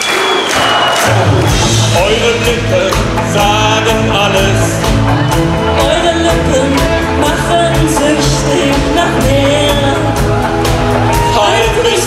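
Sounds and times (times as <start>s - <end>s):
crowd cheering: 0.0s - 2.4s, 9.5s - 12.0s
live pop band playing: 0.1s - 12.0s.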